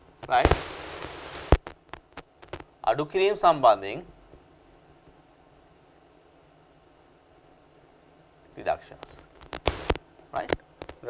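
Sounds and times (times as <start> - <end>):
marker squeaking on whiteboard: 4.0 - 9.9.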